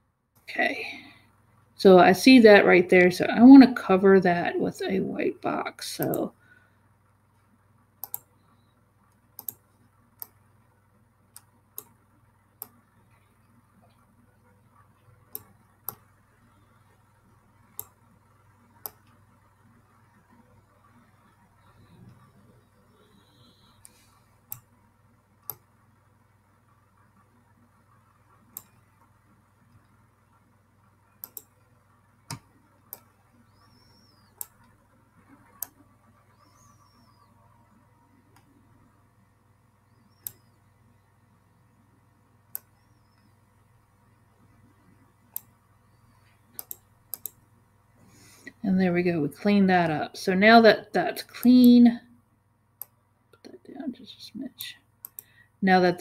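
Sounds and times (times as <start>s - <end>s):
faint low hum: 0.0s - 56.0s
computer mouse clicking: 6.0s - 6.2s, 8.0s - 10.4s, 11.3s - 12.0s, 12.6s - 14.1s, 14.8s - 18.0s, 18.7s - 19.2s, 22.9s - 24.8s, 25.4s - 25.7s, 27.0s - 30.0s, 31.1s - 38.6s, 39.9s - 40.7s, 42.5s - 43.5s, 45.2s - 47.5s, 54.6s - 55.4s.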